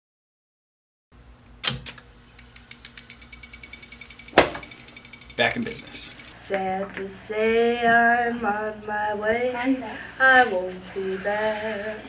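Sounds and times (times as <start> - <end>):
tape deck mechanical clunk: 1.6 - 6.3
rapid mechanical ticking: 1.8 - 6.4.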